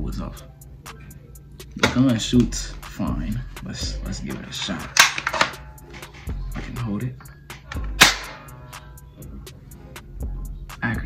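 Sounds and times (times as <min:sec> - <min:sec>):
toy gun shot: 0:04.9 - 0:05.6, 0:08.0 - 0:08.4.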